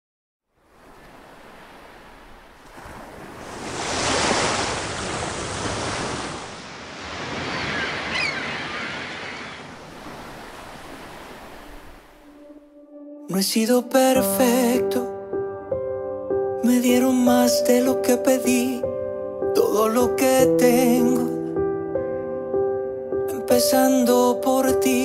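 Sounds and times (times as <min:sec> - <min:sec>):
ocean waves washing in: 0:00.6 - 0:12.7.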